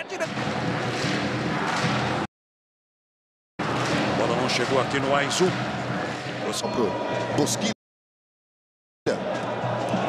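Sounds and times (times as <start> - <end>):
stadium crowd noise: 0.0 - 2.3, 3.6 - 7.8, 9.1 - 10.0.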